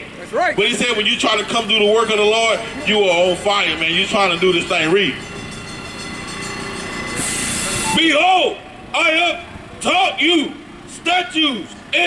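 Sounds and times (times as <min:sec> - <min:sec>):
passing vehicle hum: 0:00.0 - 0:12.0.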